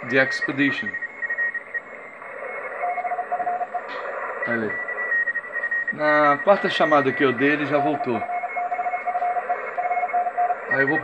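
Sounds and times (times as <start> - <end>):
high-pitched morse code tone: 0.0 - 11.0
lower-pitched morse code tone: 0.0 - 11.0
radio band hiss: 0.0 - 11.0.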